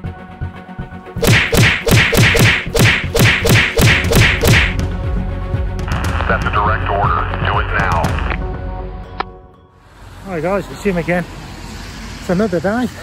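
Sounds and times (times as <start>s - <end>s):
punchy hits dropping in pitch: 1.2s - 4.8s.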